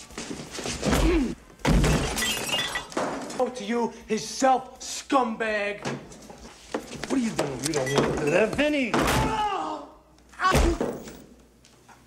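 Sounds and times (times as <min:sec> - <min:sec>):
person crying out in pain: 0:09.1 - 0:10.8.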